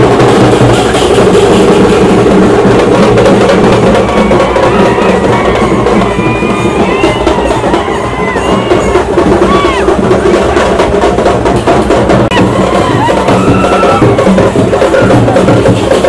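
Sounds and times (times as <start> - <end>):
percussion-heavy music: 0.0 - 16.0.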